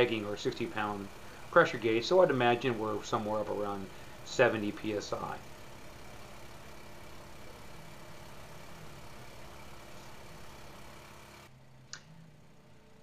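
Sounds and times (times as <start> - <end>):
small gasoline engine humming: 0.0 - 13.0.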